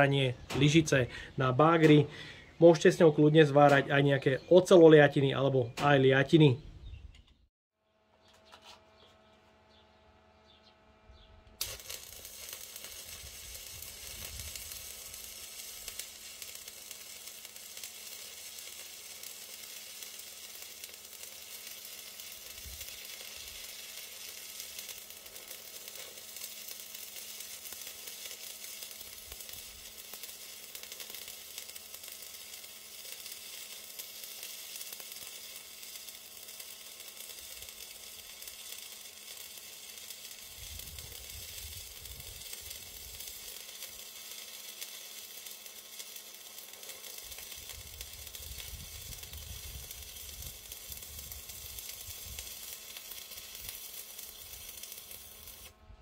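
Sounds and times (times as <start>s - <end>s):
welding arc crackling and sizzling: 0.0s - 6.5s, 11.4s - 56.0s.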